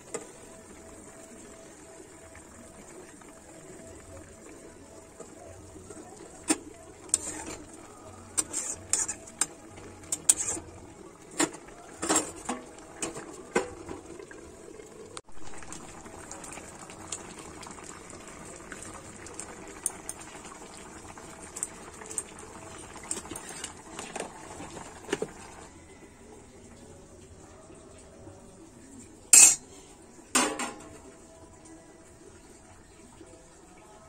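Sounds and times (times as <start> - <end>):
curry bubbling in a pan: 0.0 - 26.6
steel ladle clinking against bowl: 29.4 - 29.6.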